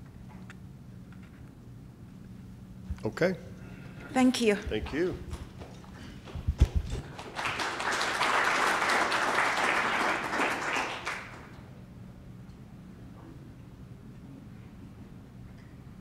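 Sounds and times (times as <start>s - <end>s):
audience applauding: 7.0s - 11.6s.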